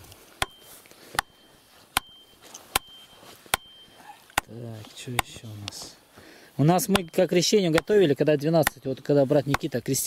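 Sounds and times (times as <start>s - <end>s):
short high ring: 0.4s - 4.3s
axe striking wooden stake: 0.4s - 5.8s, 6.8s - 9.9s.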